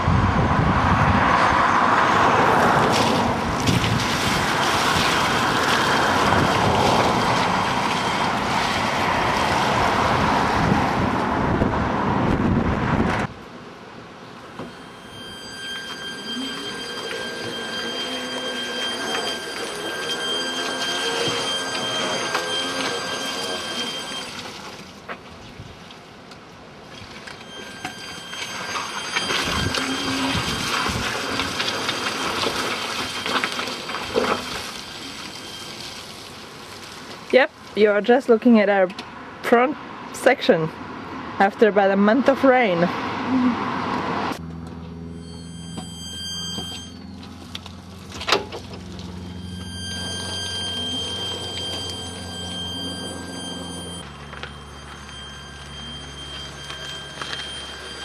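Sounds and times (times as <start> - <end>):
wind rushing on microphone: 0.0 - 2.0, 8.6 - 13.3
electric motor whining: 14.6 - 24.5, 27.3 - 36.2, 44.4 - 58.0.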